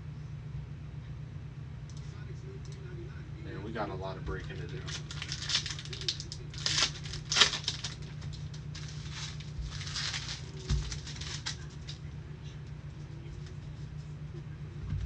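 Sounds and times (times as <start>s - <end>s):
card packs crinkling: 4.3s - 12.1s.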